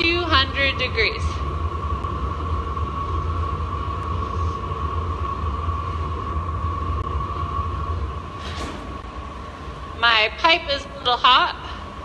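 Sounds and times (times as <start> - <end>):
gas burners and blowers rumbling: 0.0 - 12.0.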